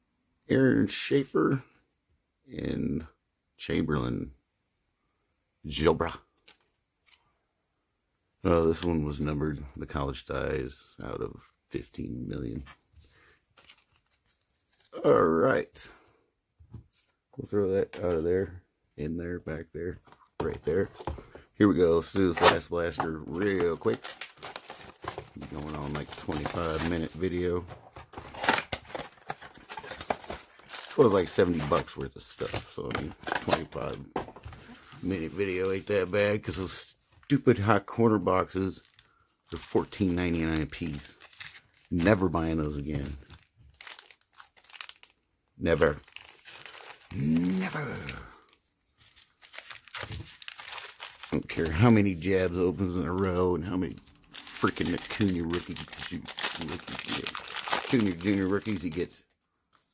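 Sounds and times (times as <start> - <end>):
wrapper crinkling and tearing: 13.2 - 15.0, 20.4 - 36.0, 38.3 - 59.9
faint rustling of box contents: 19.9 - 37.3.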